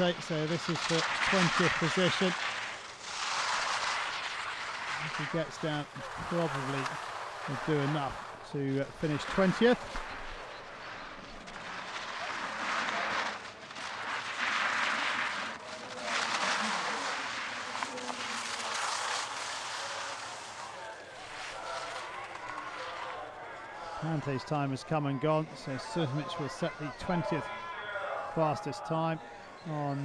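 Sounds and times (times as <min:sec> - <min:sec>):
ski edges scraping over snow: 0:00.0 - 0:27.6.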